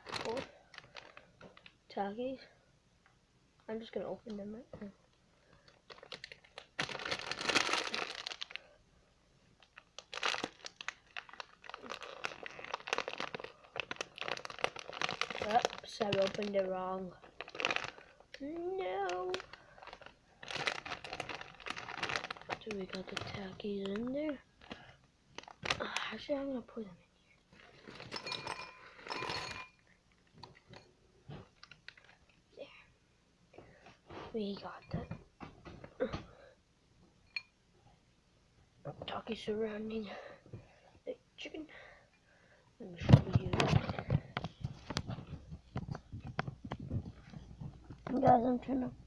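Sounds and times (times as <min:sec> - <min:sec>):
plastic chip bag crinkling: 0:00.0 - 0:01.8, 0:05.4 - 0:08.8, 0:09.6 - 0:26.3, 0:27.6 - 0:29.6, 0:31.4 - 0:32.3.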